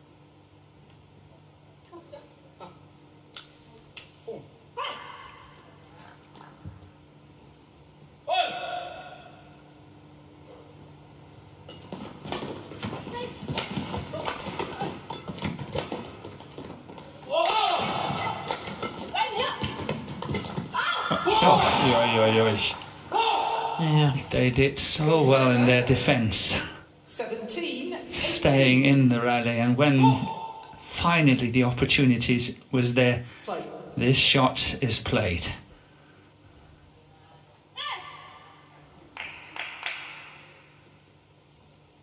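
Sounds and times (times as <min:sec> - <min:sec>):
players shouting: 0:17.2 - 0:19.8, 0:20.7 - 0:24.3.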